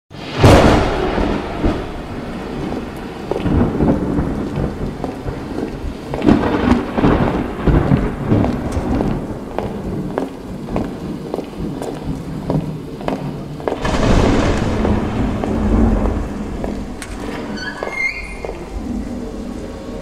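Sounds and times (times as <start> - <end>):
steady rain: 0.1 - 20.0
thunder rumbles: 0.1 - 20.0.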